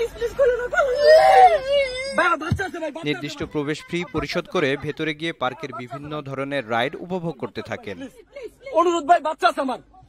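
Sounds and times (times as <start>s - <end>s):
young child crying: 0.0s - 2.4s.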